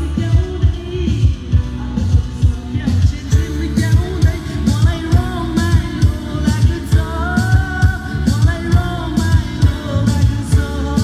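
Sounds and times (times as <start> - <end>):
amplified music with steady beat: 0.0 - 11.0
man singing into microphone: 0.0 - 11.0.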